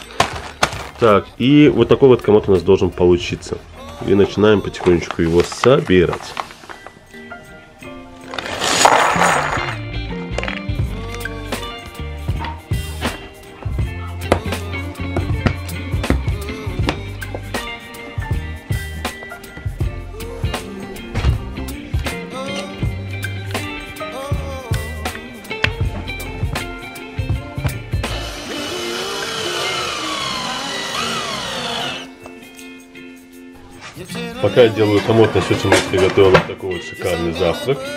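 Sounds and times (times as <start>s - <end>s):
background music with bass line: 7.0s - 37.9s
cordless drill driving a screw: 28.1s - 32.1s.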